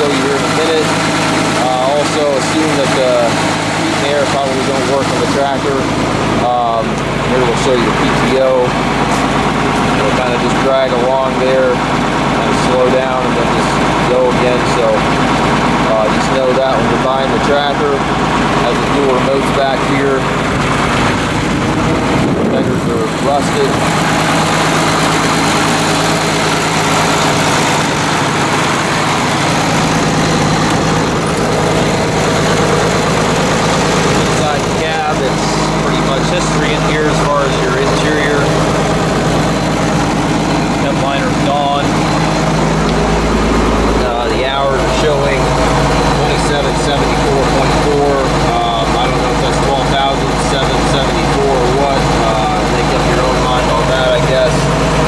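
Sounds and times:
diesel engine running: 0:00.0 - 0:55.0.

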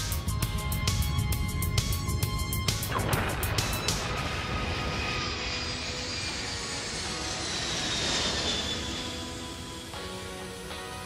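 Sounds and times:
rocket thrusters rushing: 0:02.7 - 0:09.9.

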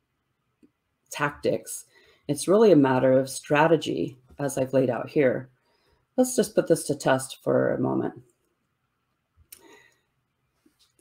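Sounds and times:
soft rustle: 0:10.4 - 0:11.0.

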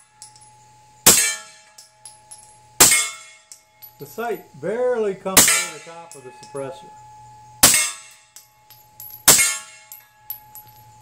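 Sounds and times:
metallic ring: 0:00.0 - 0:11.0.

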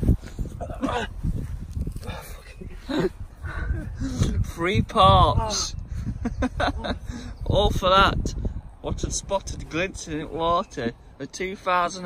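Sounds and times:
low rumbling microphone noise: 0:00.0 - 0:11.2
man grunting and laughing: 0:00.5 - 0:01.4, 0:02.0 - 0:04.4, 0:05.4 - 0:07.3.

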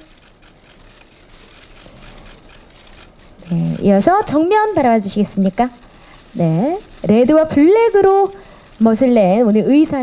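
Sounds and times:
camera shutters clicking: 0:00.0 - 0:04.4
room noise: 0:00.0 - 0:10.0.

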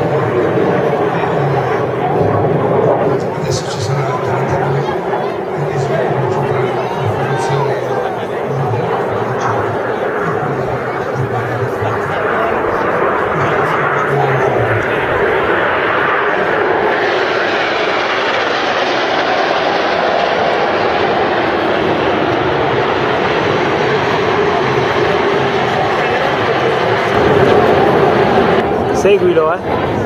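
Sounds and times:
jet aircraft flying past: 0:00.0 - 0:30.0.

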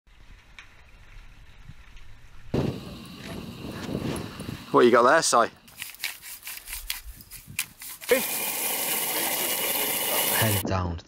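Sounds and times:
wind buffeting microphone: 0:00.9 - 0:05.2.

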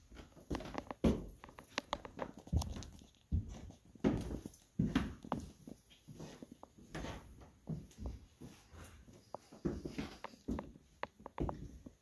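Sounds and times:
footsteps indoors: 0:00.0 - 0:12.0.

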